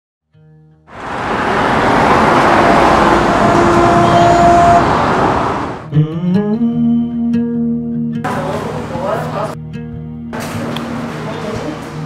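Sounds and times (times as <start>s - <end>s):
rushing road traffic: 0.9s - 5.9s, 8.3s - 9.6s, 10.4s - 12.0s.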